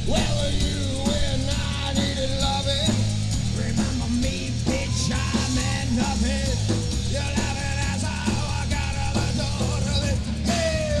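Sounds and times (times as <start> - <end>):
drum kit: 0.0 - 11.0
electric guitars: 0.0 - 11.0.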